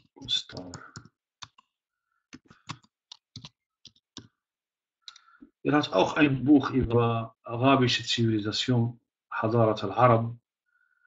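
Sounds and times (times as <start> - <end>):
typing on computer keyboard: 0.0 - 1.7, 2.3 - 4.3.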